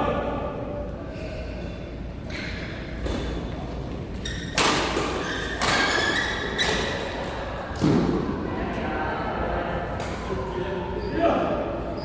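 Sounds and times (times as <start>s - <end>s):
shoe squeaks: 3.2s - 4.6s, 5.2s - 7.1s, 10.9s - 12.0s
racket hitting shuttlecock: 4.5s - 7.1s.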